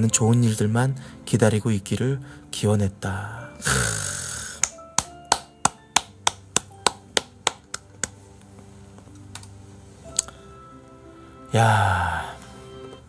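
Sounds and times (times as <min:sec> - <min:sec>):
soft background music: 0:00.0 - 0:13.0
person clapping: 0:04.5 - 0:08.2.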